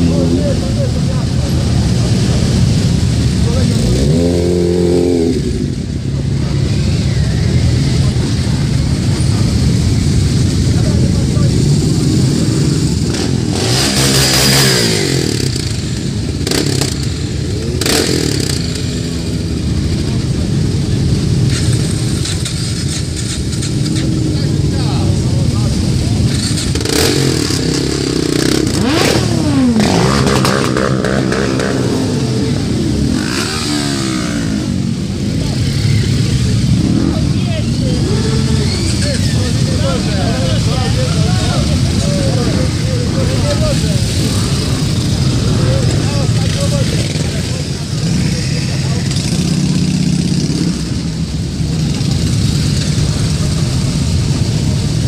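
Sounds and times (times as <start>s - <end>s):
motorcycle engines rumbling: 0.0s - 55.0s
motorcycles revving past: 0.0s - 55.0s.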